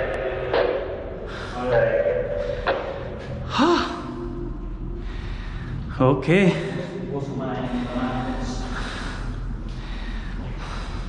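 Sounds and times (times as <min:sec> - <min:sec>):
low machinery hum: 0:00.0 - 0:11.0.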